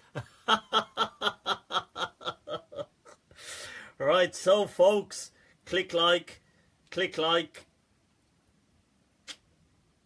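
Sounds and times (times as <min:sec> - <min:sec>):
man laughing: 0:00.0 - 0:03.3.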